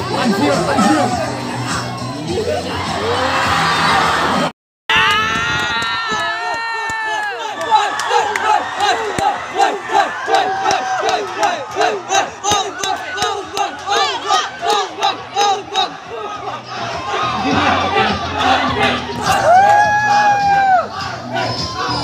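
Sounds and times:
audience cheering: 0:02.1 - 0:22.0
people clapping: 0:05.0 - 0:15.6
audience chanting: 0:07.2 - 0:19.6, 0:20.7 - 0:22.0.

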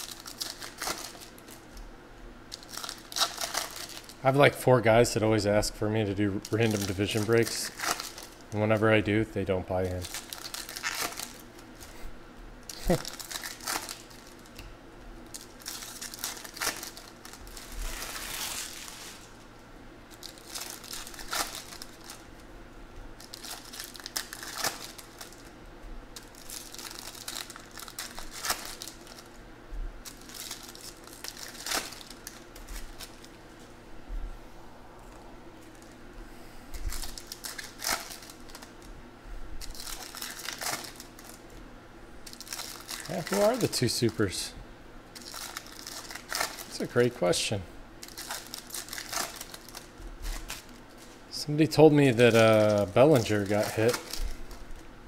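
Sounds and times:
foil wrappers crinkling and tearing: 0:00.0 - 0:01.9, 0:02.5 - 0:12.0, 0:12.6 - 0:14.6, 0:15.2 - 0:19.5, 0:20.1 - 0:22.5, 0:23.1 - 0:29.4, 0:30.0 - 0:33.7, 0:36.7 - 0:38.9, 0:39.6 - 0:41.6, 0:42.2 - 0:44.5, 0:45.1 - 0:54.9
cards sliding and handled: 0:17.7 - 0:19.3.

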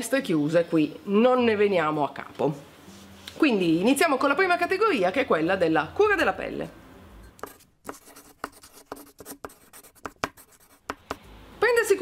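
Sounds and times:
chalk scratching on blackboard: 0:07.4 - 0:11.2.

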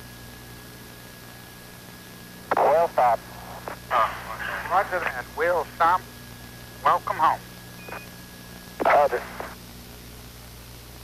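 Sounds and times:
radio hiss and hum: 0:00.9 - 0:11.0
voice over radio: 0:02.5 - 0:06.0, 0:06.8 - 0:07.4, 0:08.8 - 0:09.6.

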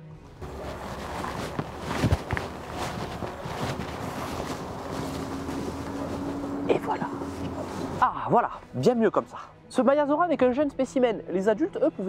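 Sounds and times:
low steady hum: 0:00.3 - 0:08.3
rustling in dry pine needles: 0:00.4 - 0:08.1
steady outdoor hiss: 0:00.4 - 0:09.1.

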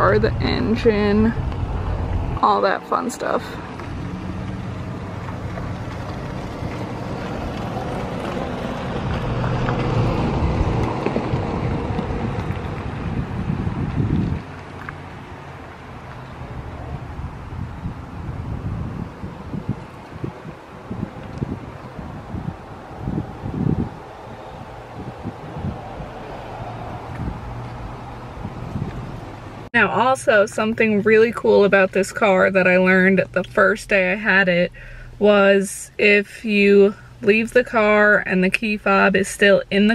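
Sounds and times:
wind buffeting microphone: 0:00.0 - 0:34.0
low steady engine hum: 0:00.0 - 0:39.9.

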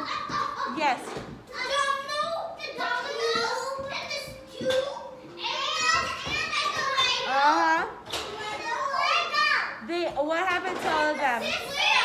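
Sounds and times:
young children talking: 0:01.5 - 0:09.8, 0:10.8 - 0:12.0.

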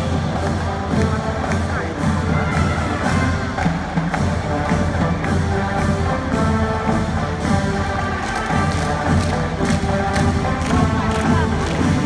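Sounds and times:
brass chords: 0:00.0 - 0:12.0
steady drum beat: 0:00.0 - 0:12.0.

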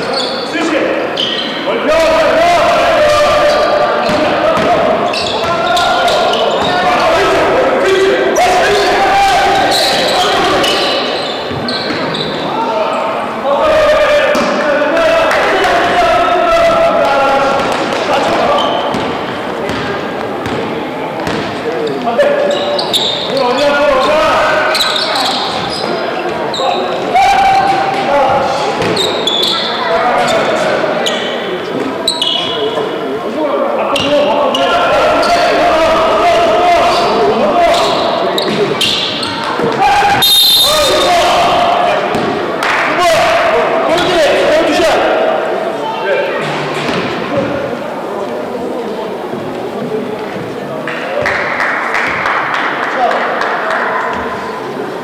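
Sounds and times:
players shouting: 0:00.0 - 0:46.4.

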